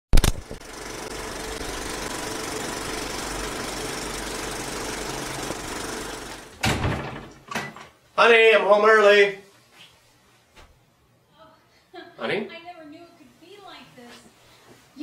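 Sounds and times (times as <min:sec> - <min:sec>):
sharp click: 0:00.2 - 0:00.6
mechanical rattling: 0:00.2 - 0:07.1.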